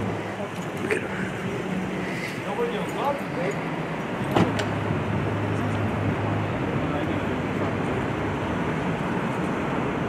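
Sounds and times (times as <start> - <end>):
low voices: 0.0 - 3.6.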